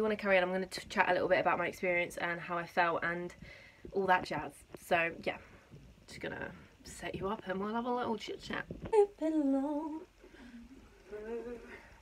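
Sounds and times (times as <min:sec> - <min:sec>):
woman humming: 0:09.0 - 0:12.0.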